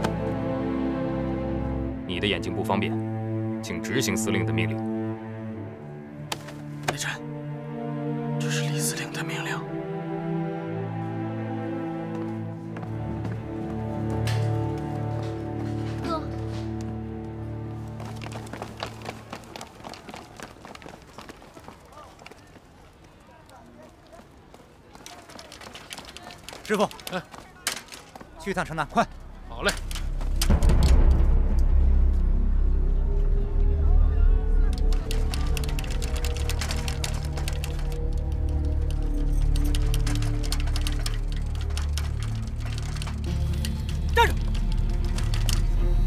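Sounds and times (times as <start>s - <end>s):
many footsteps running: 12.0s - 28.8s, 34.8s - 45.8s
sustained low music notes: 29.2s - 46.0s.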